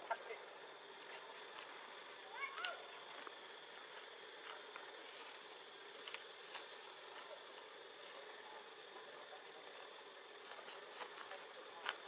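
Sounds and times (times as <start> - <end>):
background hiss: 0.0 - 12.0
high-pitched insect drone: 0.0 - 12.0.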